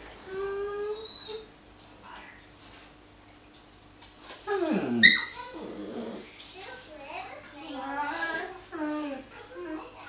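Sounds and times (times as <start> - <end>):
dog whimpering: 0.3 - 1.5, 4.5 - 6.3, 7.8 - 10.0
puppy yelp: 4.6 - 5.6.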